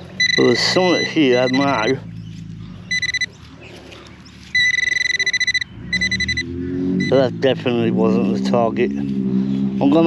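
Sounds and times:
pinpointer electronic beeping: 0.2 - 2.0, 2.9 - 3.3, 4.5 - 7.2.

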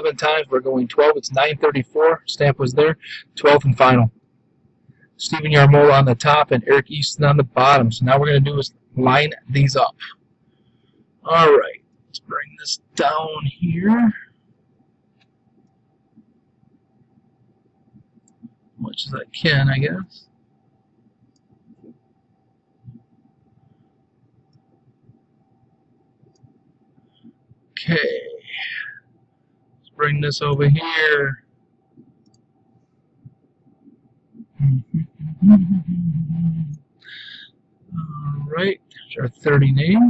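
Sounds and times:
thin electrical hum: 0.0 - 40.0.

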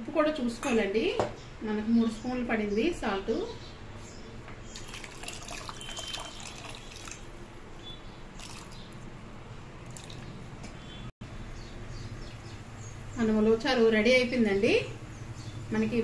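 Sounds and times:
liquid pouring into metal pot: 4.8 - 7.3, 8.4 - 8.8, 9.9 - 10.2.

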